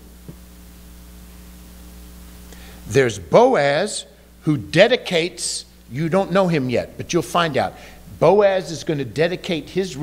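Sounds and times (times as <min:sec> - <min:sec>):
electrical mains hum: 0:00.0 - 0:10.0
faint microphone hiss: 0:00.0 - 0:10.0.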